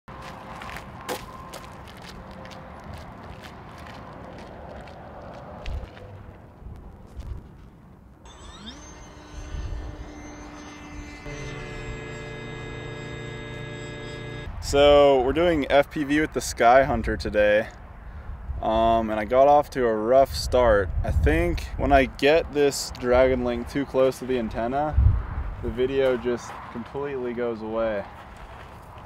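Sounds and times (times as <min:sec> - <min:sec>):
model plane electric motor and propeller: 0:08.3 - 0:15.0
wind rumble: 0:24.8 - 0:25.9.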